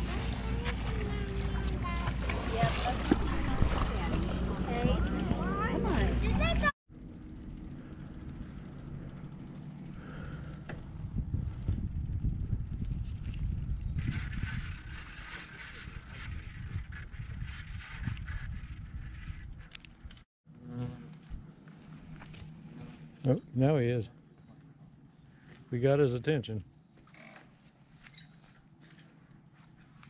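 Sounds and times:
wind rumble on microphone: 10.0s - 20.2s.

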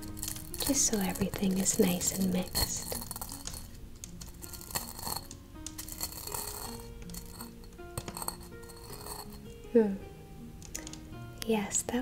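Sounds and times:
stone pestle grinding herbs: 0.0s - 9.5s
soft background music: 0.0s - 12.0s.

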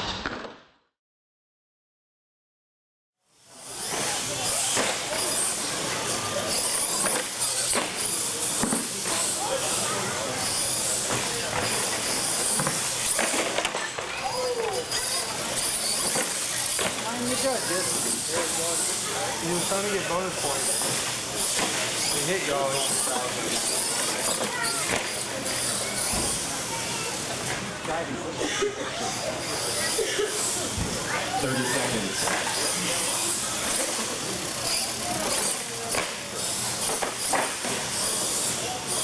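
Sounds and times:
toy truck motor whining: 3.3s - 28.2s, 28.9s - 39.0s
murmur of spectators talking: 3.3s - 39.0s.

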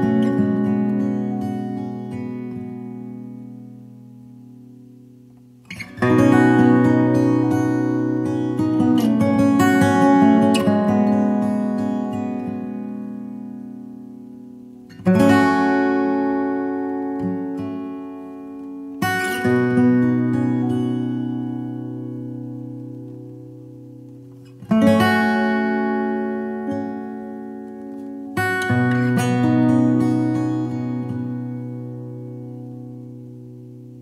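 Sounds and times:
acoustic guitar strumming chords: 0.0s - 34.0s.

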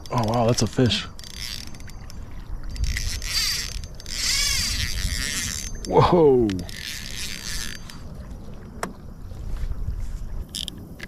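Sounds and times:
fishing reel line whirring: 0.0s - 8.4s, 10.4s - 11.0s
water and hull noise: 0.0s - 11.0s.

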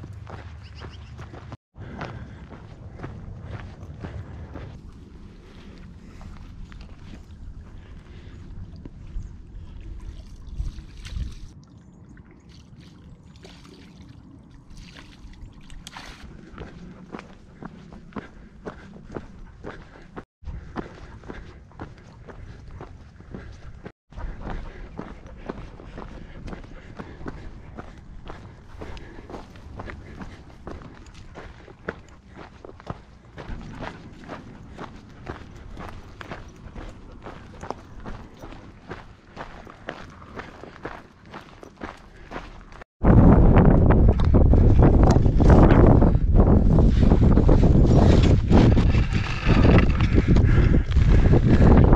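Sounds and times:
footsteps crunching on gravel: 0.0s - 7.3s, 24.2s - 42.9s, 46.9s - 51.9s.

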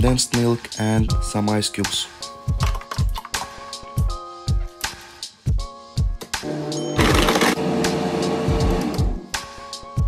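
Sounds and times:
blender crushing ice: 7.0s - 7.6s.

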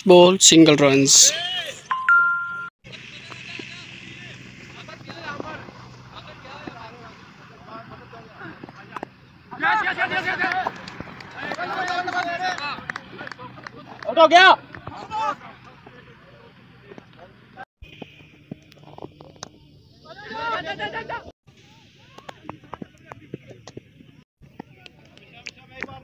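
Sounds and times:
low outdoor background: 0.0s - 26.0s
players shouting: 2.9s - 16.8s, 20.0s - 21.3s.

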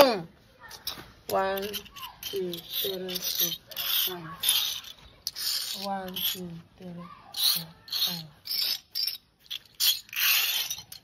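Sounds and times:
bottle caps rattling on concrete: 0.7s - 6.6s, 7.3s - 11.0s.

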